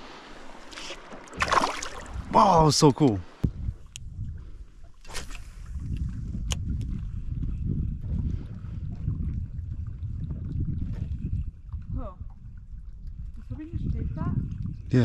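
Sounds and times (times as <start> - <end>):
wind buffeting microphone: 1.4 - 2.7, 3.4 - 15.0.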